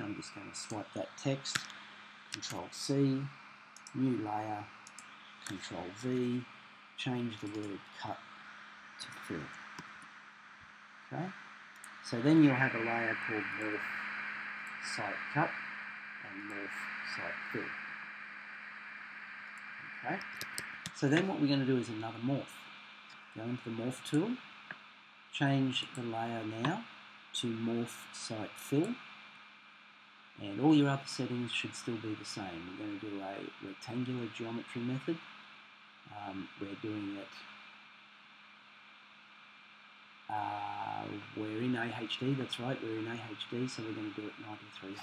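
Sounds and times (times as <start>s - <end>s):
faint low hum: 0.0s - 45.0s
microphone background hiss: 0.0s - 45.0s.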